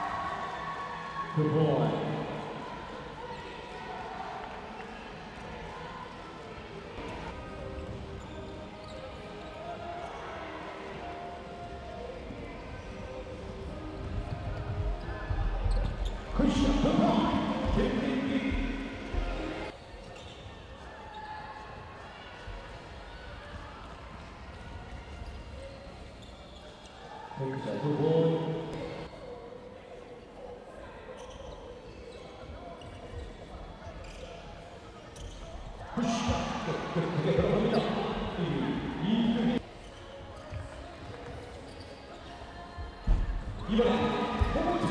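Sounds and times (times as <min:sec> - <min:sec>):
people shouting and cheering: 0:00.0 - 0:04.9
voices in large hall: 0:00.0 - 0:44.9
shoe squeaks: 0:07.7 - 0:09.7, 0:14.9 - 0:21.4, 0:25.2 - 0:27.1, 0:31.1 - 0:34.5, 0:35.1 - 0:38.4, 0:39.7 - 0:44.9.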